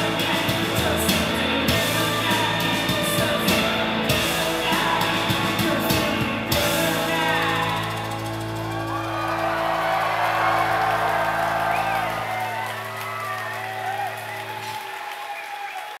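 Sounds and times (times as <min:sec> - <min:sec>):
rock band chord ringing: 0:00.0 - 0:14.7
crowd cheering whooping clapping: 0:08.4 - 0:16.0.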